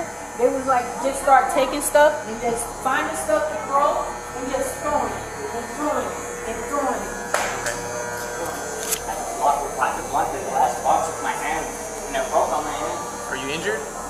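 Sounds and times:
woman talking: 0.0s - 7.2s, 8.3s - 13.0s
electrical buzz with high whine: 0.0s - 14.0s.

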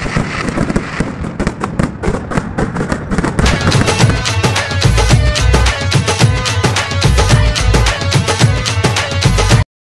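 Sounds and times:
fireworks bangs and crackles: 0.0s - 9.6s
music: 3.4s - 9.7s.

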